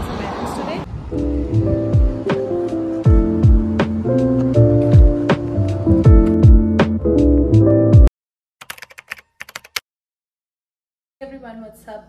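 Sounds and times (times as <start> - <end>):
background music: 1.1 - 8.1
keyboard typing clicks: 8.6 - 9.8.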